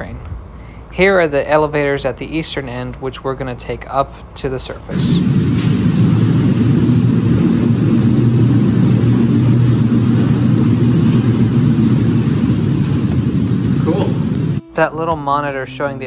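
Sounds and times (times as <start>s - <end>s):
elevator rumbling and humming: 4.8s - 16.0s
person speaking: 13.7s - 16.0s.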